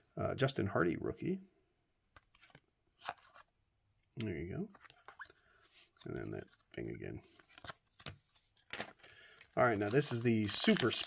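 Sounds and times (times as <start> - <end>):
cards shuffled in hands: 4.8 - 11.0.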